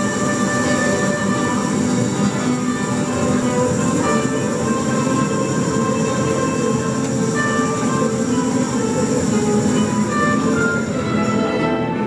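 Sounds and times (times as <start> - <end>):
guitars and strings playing: 0.0 - 12.0.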